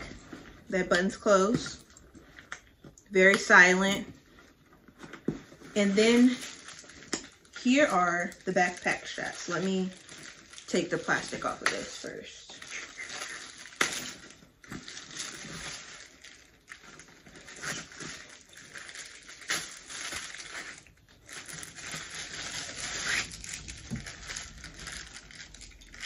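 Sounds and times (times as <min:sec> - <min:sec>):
plastic wrapping crinkling and tearing: 0:00.0 - 0:26.0.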